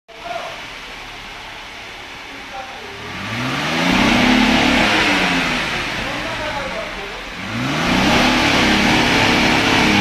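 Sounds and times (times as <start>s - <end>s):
car engine idling: 0.1s - 10.0s.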